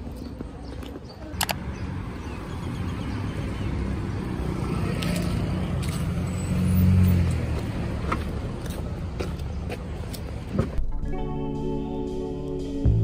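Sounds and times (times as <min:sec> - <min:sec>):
traffic noise: 0:00.0 - 0:10.9.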